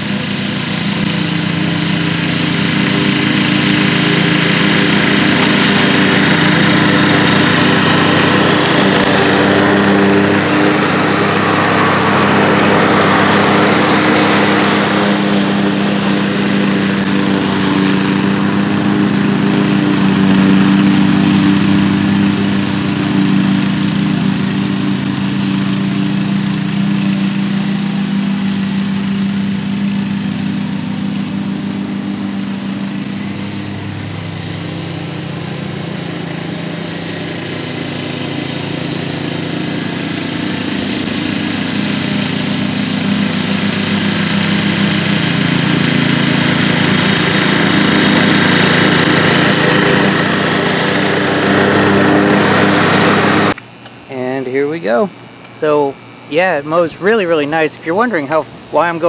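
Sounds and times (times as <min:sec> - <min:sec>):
lawn mower engine running: 0:00.0 - 0:59.0.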